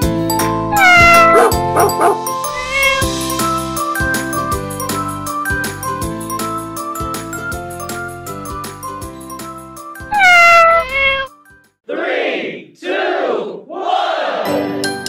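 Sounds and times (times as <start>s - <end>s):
cat meowing: 0.7s - 3.2s, 10.1s - 11.3s
upbeat children's music with chimes: 1.6s - 10.0s.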